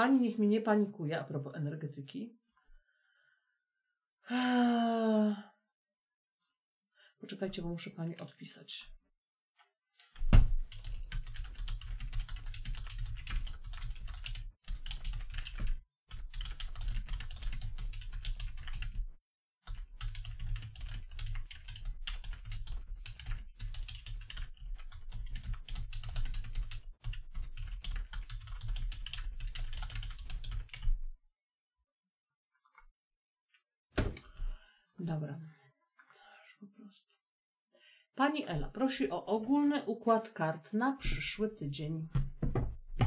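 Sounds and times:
fast typing on keyboard: 10.0s - 31.1s.

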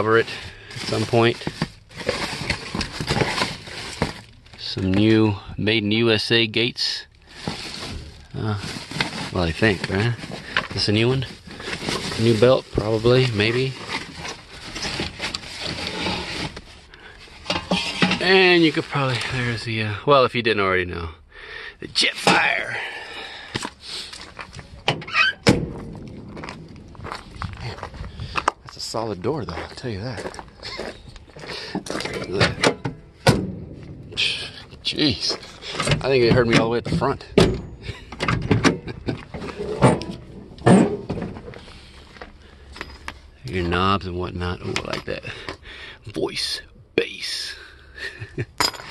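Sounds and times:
paper and cardboard rustling: 0.0s - 5.0s, 7.3s - 19.4s
handling noise: 23.6s - 43.8s.

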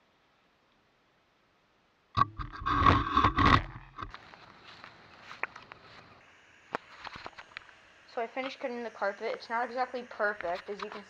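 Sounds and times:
scraping against microphone: 2.2s - 6.1s, 6.8s - 7.5s.

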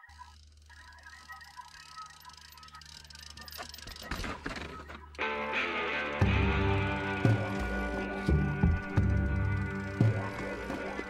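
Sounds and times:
bike rattling clicks: 0.0s - 5.2s.

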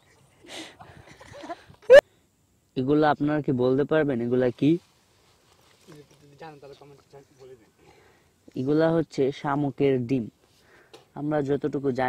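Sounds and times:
narration: 6.0s - 10.4s, 11.1s - 12.0s.

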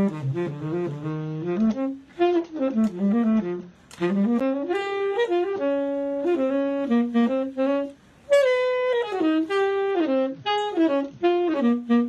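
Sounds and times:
muffled tenor saxophone: 0.0s - 12.0s.

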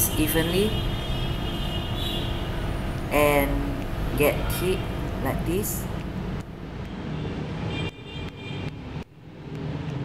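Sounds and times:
low rumbling background noise: 2.3s - 7.6s.

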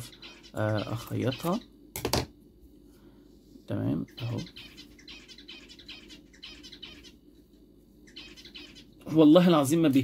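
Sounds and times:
pet birds chirping: 0.0s - 1.9s, 3.7s - 9.7s.

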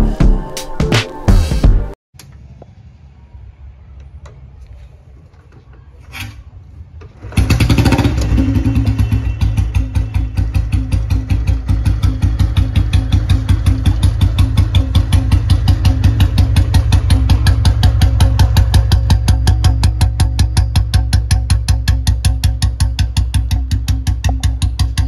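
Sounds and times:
motorcycle engine starting and idling: 3.8s - 25.0s.

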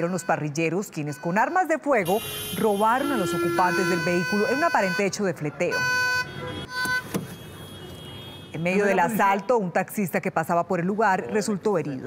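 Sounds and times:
car horn honking: 0.0s - 9.5s
street traffic noise: 0.0s - 12.0s.

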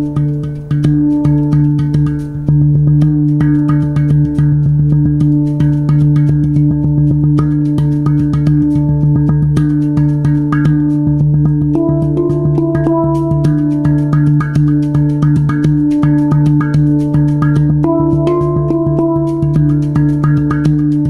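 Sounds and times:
steel hand drum played: 0.0s - 21.0s.

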